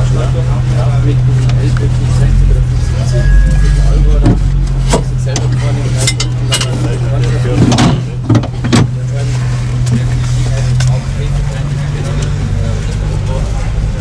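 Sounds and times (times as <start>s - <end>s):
race car engine drone: 0.0s - 14.0s.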